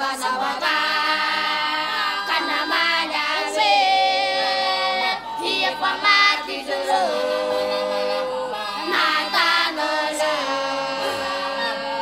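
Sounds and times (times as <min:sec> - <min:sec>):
boys singing a cappella: 0:00.0 - 0:12.0.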